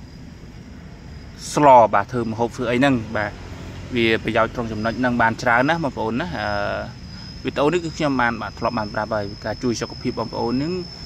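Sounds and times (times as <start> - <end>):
high-pitched insect-like trill: 0.0 - 11.0.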